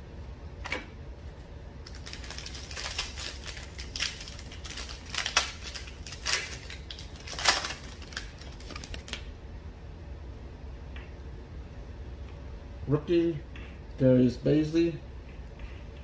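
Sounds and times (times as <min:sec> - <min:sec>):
foil wrapper crinkling and tearing: 0:01.8 - 0:09.2.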